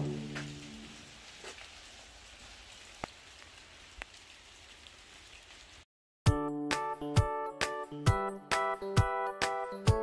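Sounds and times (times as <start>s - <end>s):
water drips: 0.0s - 5.8s
light rain hiss: 0.0s - 5.9s.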